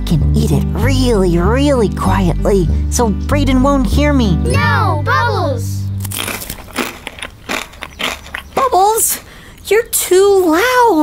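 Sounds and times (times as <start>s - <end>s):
crunchy cookie being chewed: 6.0s - 9.7s.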